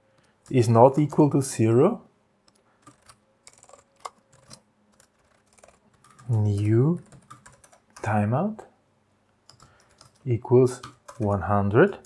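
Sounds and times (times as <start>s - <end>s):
typing on computer keyboard: 2.5s - 8.1s, 9.5s - 12.0s.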